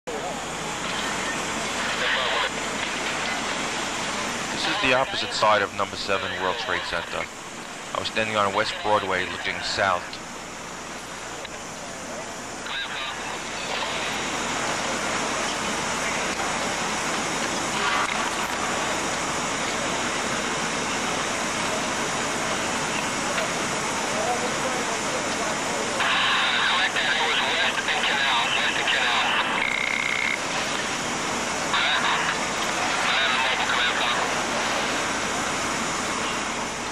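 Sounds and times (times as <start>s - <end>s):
hissing city ambience: 0.1s - 36.9s
voices: 0.1s - 36.9s
steady tone: 26.0s - 36.9s.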